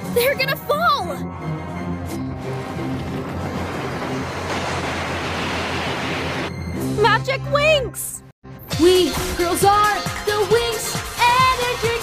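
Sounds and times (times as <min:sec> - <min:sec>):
background music: 0:00.0 - 0:04.6, 0:06.5 - 0:12.0
rushing whoosh effect: 0:02.2 - 0:06.8.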